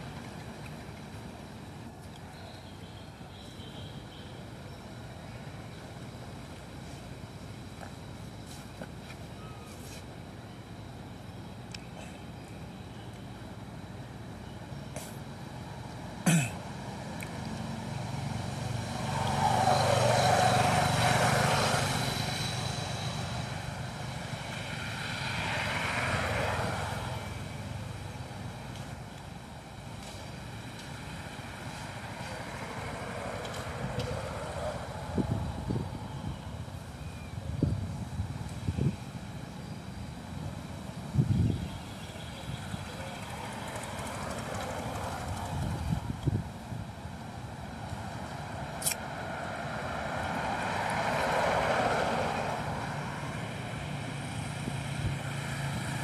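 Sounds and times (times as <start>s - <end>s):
low outdoor hum: 0.0s - 56.0s
passing motor vehicle: 15.0s - 56.0s.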